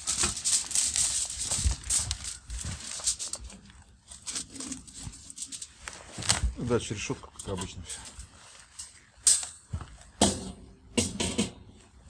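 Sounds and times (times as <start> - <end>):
aluminium foil crinkling: 0.0 - 10.2.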